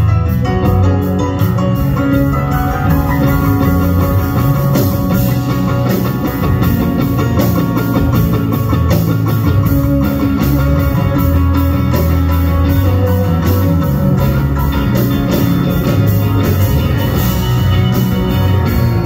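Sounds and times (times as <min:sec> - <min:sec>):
electric guitar: 0:00.0 - 0:19.0
live band playing: 0:00.0 - 0:19.0.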